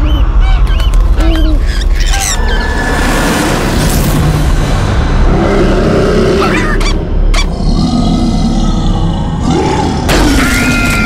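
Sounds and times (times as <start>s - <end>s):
grunting and roaring: 5.1s - 6.9s, 7.5s - 10.4s.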